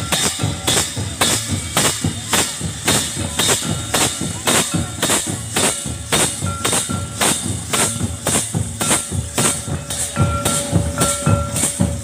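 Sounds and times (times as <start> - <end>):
bright jingling clash: 0.0 - 12.0
folk dance drums beating: 0.0 - 12.0.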